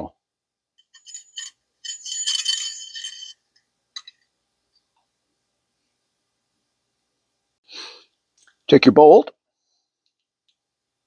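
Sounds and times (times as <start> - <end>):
metal spring scraping and jingling: 0.9 - 3.4.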